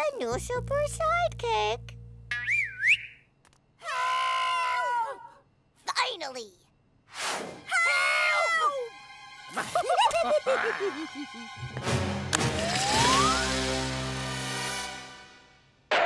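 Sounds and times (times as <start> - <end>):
cartoon character yelling: 7.7 - 8.9
whistle sound effect gliding: 12.6 - 13.7.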